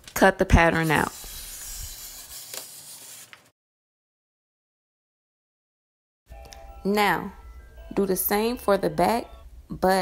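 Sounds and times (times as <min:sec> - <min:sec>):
scissors cutting paper: 0:00.8 - 0:03.4.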